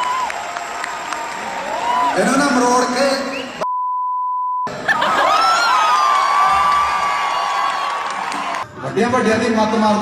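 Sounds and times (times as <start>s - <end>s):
loud crowd noise: 0.0s - 3.6s, 4.7s - 10.0s
censorship bleep: 3.3s - 4.7s.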